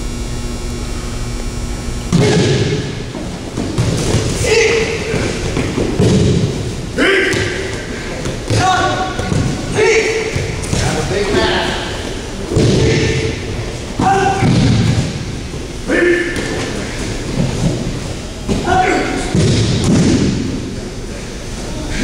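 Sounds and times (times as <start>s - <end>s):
short sharp shouts: 4.4s - 5.4s, 7.0s - 7.7s, 8.6s - 10.4s, 14.0s - 14.5s.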